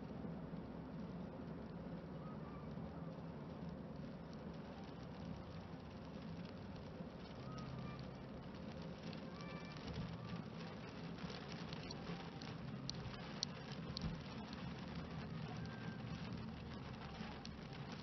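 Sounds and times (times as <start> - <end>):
car rumbling on wet road: 0.0 - 18.0
raindrops pattering on car: 0.0 - 18.0.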